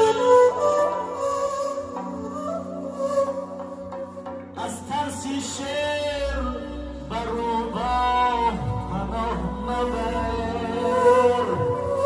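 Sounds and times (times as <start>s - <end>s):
man singing through microphone: 0.0s - 3.4s, 4.5s - 12.0s
instrumental accompaniment: 0.0s - 12.0s.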